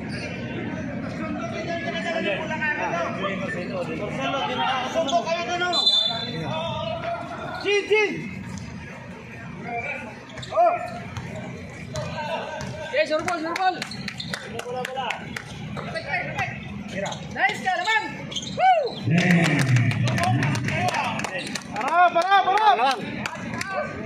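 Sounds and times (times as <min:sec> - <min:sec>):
shoe squeaks: 0:00.0 - 0:00.4, 0:04.9 - 0:06.4, 0:10.2 - 0:14.5, 0:15.8 - 0:19.1
people calling out and chattering: 0:00.0 - 0:24.0
basketball bouncing on court: 0:10.4 - 0:13.6.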